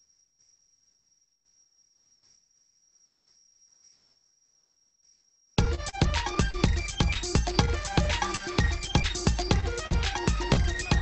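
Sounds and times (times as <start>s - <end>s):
soft rustles: 2.0s - 4.4s.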